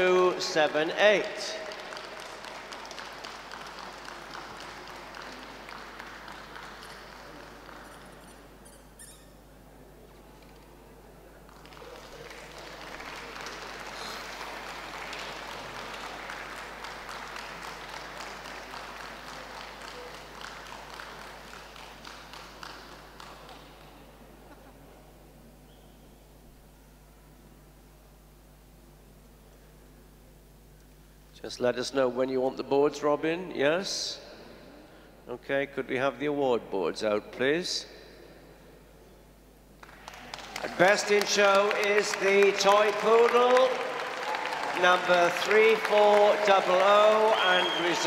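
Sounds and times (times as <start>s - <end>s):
audience applauding: 0.6s - 9.1s, 11.5s - 24.4s, 39.8s - 48.0s.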